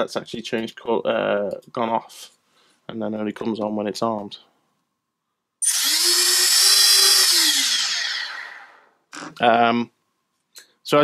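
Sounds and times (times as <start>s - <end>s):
drone motors whining: 5.6s - 9.3s.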